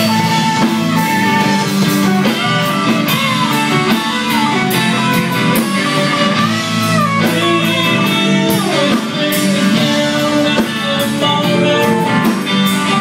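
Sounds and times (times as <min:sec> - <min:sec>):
bass guitar: 0:00.0 - 0:13.0
drum kit: 0:00.0 - 0:13.0
electric guitars: 0:00.0 - 0:13.0.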